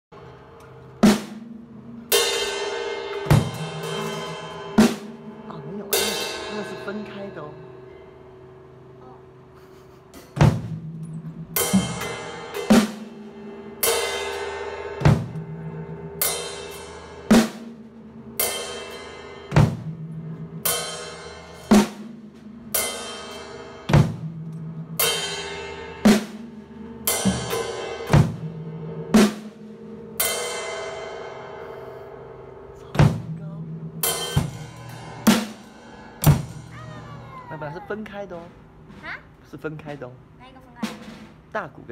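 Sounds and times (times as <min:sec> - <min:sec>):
drum hits: 0:01.0 - 0:07.2, 0:10.2 - 0:31.3, 0:32.8 - 0:37.6, 0:40.8 - 0:41.6
cymbal crash: 0:01.0 - 0:08.5, 0:10.4 - 0:24.4, 0:25.0 - 0:36.8.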